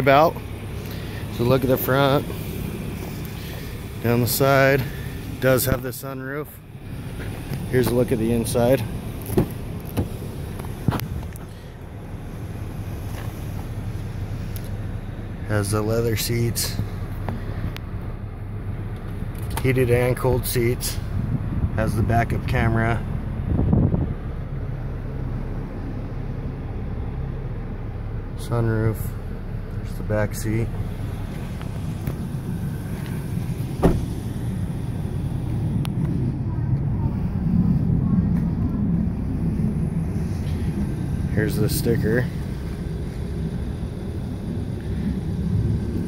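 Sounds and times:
car cabin engine hum: 0:00.0 - 0:46.0
low outdoor rumble: 0:00.0 - 0:46.0.

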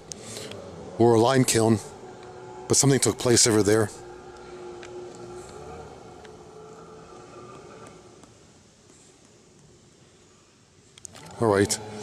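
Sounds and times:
distant engine hum: 0:00.0 - 0:08.3
faint outdoor background noise: 0:00.0 - 0:12.0.

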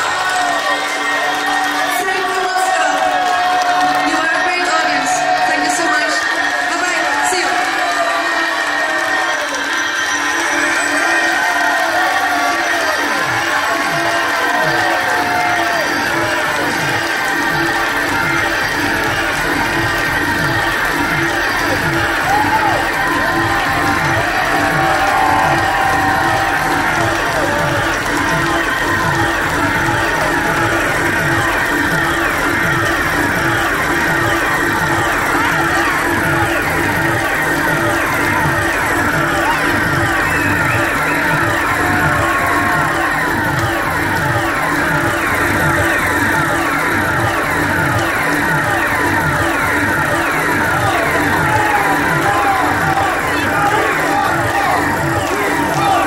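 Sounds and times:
electronic music over pa: 0:00.0 - 0:56.0.

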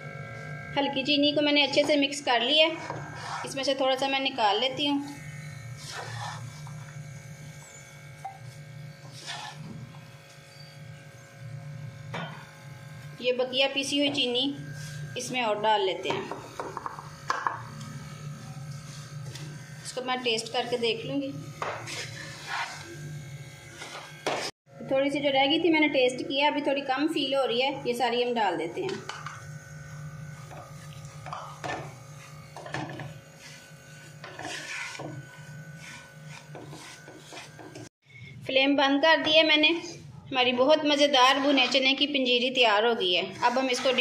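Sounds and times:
wooden spatula scraping a wok: 0:02.7 - 0:03.7, 0:05.7 - 0:06.9, 0:09.0 - 0:09.9, 0:21.6 - 0:23.0, 0:23.7 - 0:24.5, 0:33.3 - 0:37.9, 0:41.2 - 0:41.9, 0:43.5 - 0:44.0.

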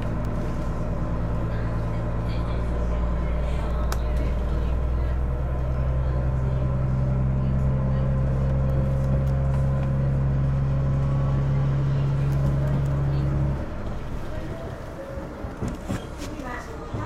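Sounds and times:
railcar diesel engine drone: 0:00.0 - 0:17.0.

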